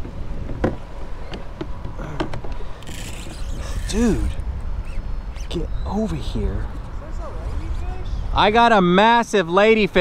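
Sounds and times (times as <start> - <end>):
wind rumble on microphone: 0.0 - 8.7.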